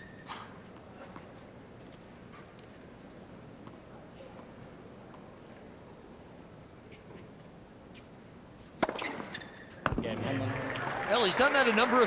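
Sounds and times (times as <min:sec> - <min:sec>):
tennis racket hitting ball: 0:08.8 - 0:10.0.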